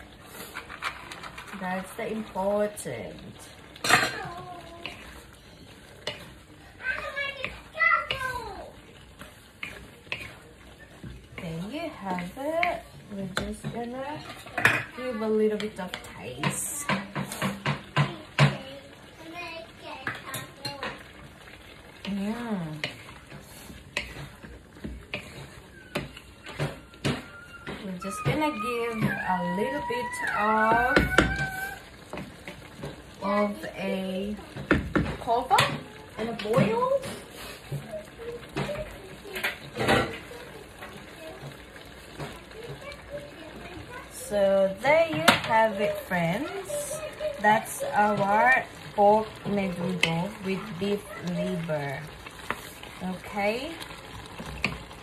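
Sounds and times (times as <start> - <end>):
stew sizzling in a wok: 0.0 - 55.0.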